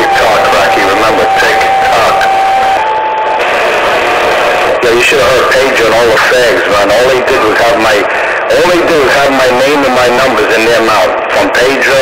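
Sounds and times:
steady whistle: 0:00.0 - 0:04.6
radio hiss: 0:00.0 - 0:12.0.

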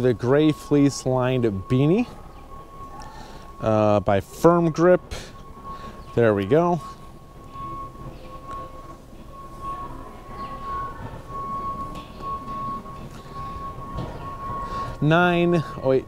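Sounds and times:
low murmur: 0:00.0 - 0:16.0
steady whining tone: 0:00.0 - 0:16.0.

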